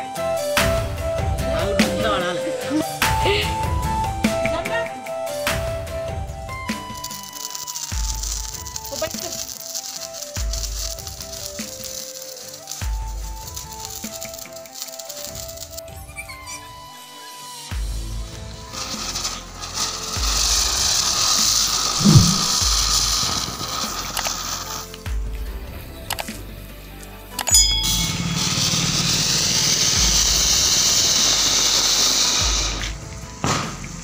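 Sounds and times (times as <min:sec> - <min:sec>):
firework sparks hissing: 0:05.0 - 0:25.2, 0:28.0 - 0:34.0
background music with bass beat: 0:21.8 - 0:23.3
short low thud: 0:22.0 - 0:22.6.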